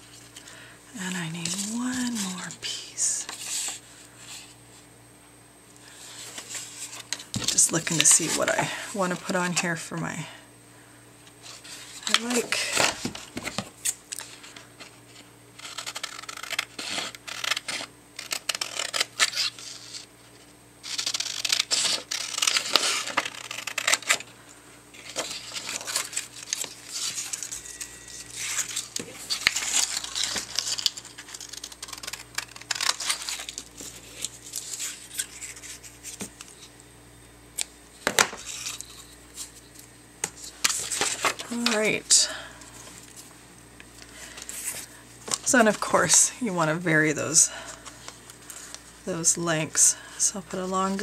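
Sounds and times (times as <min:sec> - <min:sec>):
paper rustling: 0:25.0 - 0:36.8.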